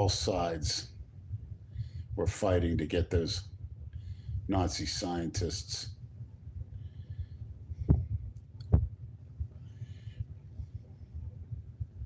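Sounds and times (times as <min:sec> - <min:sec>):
phone microphone handling rumble: 0:07.7 - 0:09.6.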